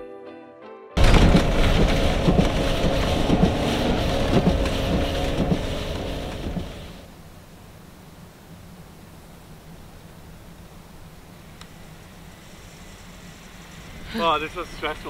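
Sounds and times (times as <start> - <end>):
background music: 0.0 - 4.2
truck rumbling through snow: 1.0 - 7.1
steady hum: 1.0 - 15.0
quiet hiss: 5.5 - 15.0.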